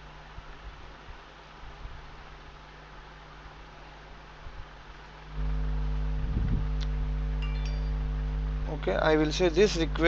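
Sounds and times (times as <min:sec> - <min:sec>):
faint hiss: 0:00.0 - 0:10.0
low electrical hum: 0:00.0 - 0:10.0
brief high tones: 0:07.4 - 0:08.2.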